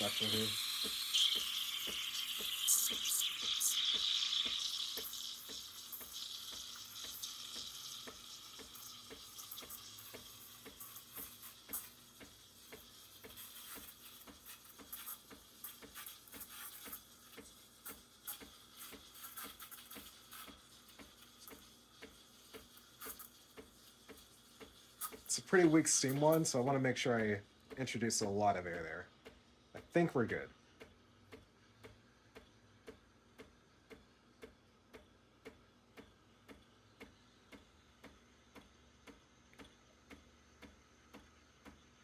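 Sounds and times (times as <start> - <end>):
steam wand hissing into milk: 0.0 - 27.3
fast steady machine ticking: 0.0 - 42.0.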